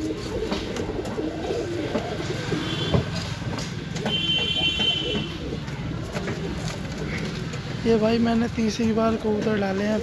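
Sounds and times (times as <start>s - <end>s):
pigeons cooing: 0.0s - 7.7s.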